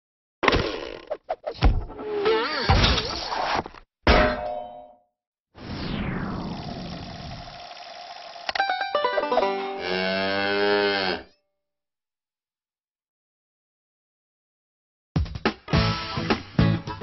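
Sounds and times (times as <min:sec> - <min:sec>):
metallic ding: 0:04.1 - 0:05.0
spinning whirr: 0:06.0 - 0:08.6
cow mooing: 0:09.7 - 0:11.4.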